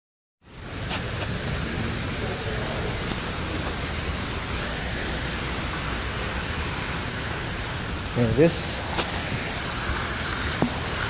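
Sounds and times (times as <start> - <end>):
fountain water splashing: 0.4 - 11.0.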